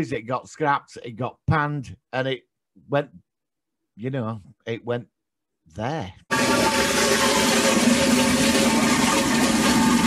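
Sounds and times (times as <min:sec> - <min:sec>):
toilet flushing: 0:06.3 - 0:10.0.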